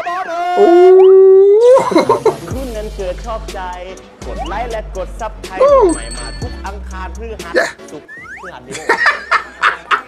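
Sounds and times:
man's loud howling cry: 0.5 - 2.2.

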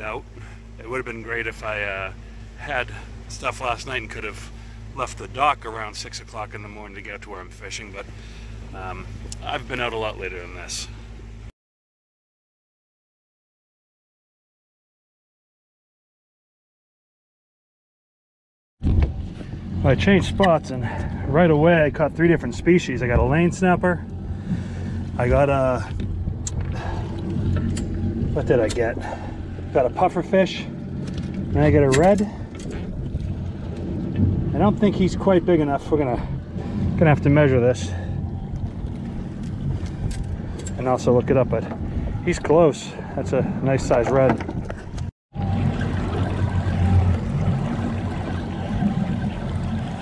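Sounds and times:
outboard engine idling: 0.0 - 11.5, 18.8 - 50.0
waves sloshing against hull: 0.0 - 11.5, 18.8 - 50.0
wind: 0.0 - 11.5, 18.8 - 50.0
low rumble: 18.8 - 50.0.

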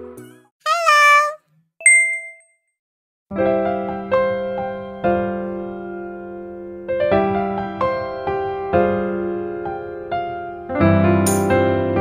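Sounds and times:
bright bell ding: 1.8 - 2.5.

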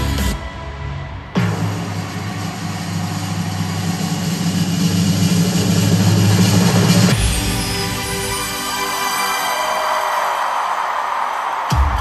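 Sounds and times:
live concert music: 0.0 - 12.0.

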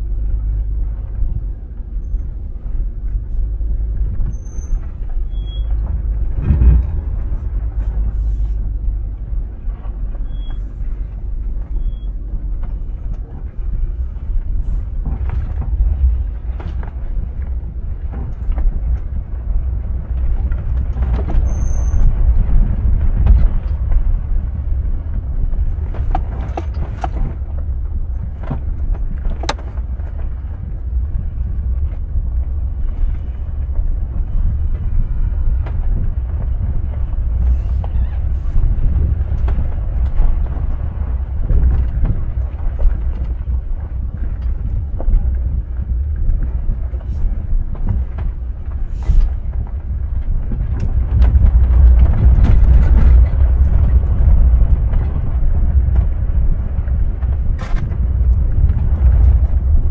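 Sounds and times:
car knocks and rattles: 0.0 - 59.9
engine and tyres rumbling: 0.0 - 59.9.

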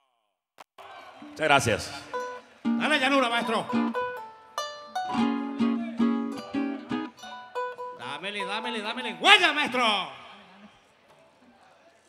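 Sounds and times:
plucked string melody: 2.0 - 9.2.

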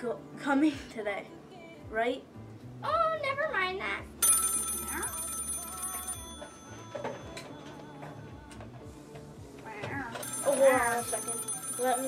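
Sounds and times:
telephone ringing: 4.2 - 8.4, 10.1 - 12.0.

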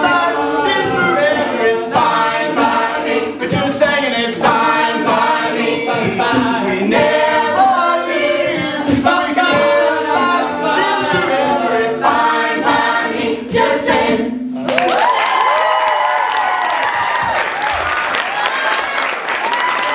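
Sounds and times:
a cappella group singing: 0.0 - 14.7
audience applause and cheering: 14.6 - 19.9.

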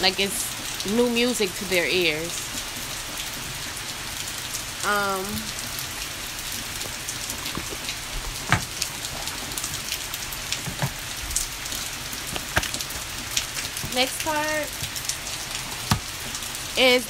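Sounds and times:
steady rain falling: 0.0 - 17.0.

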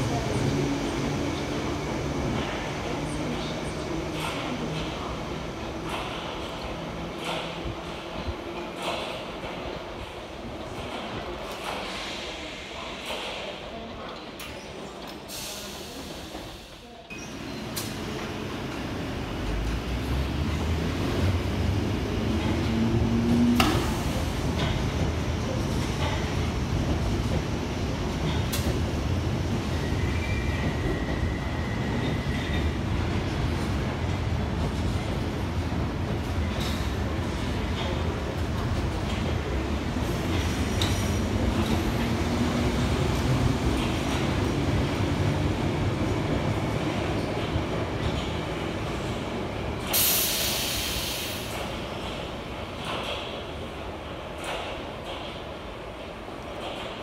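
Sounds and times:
train low rumble: 0.0 - 57.0.

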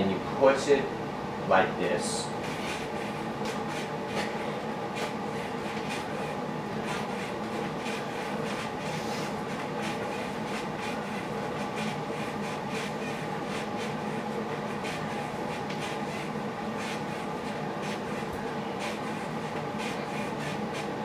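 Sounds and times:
steady room hum: 0.0 - 21.0.

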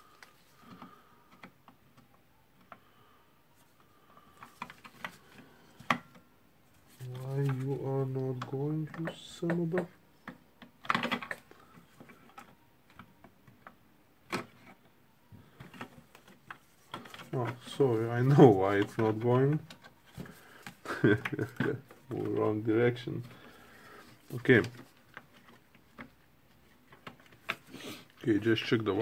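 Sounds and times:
plastic parts clicking: 8.3 - 14.8.

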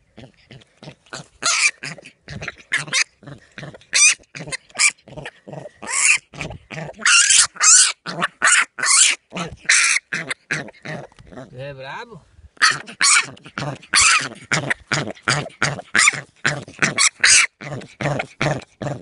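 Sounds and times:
young pig squealing and grunting: 0.0 - 11.7, 12.6 - 19.0.

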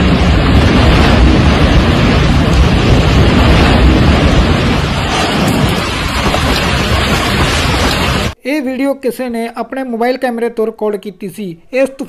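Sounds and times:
loud rush of wind: 0.0 - 8.4
wind buffeting microphone: 0.0 - 8.4.

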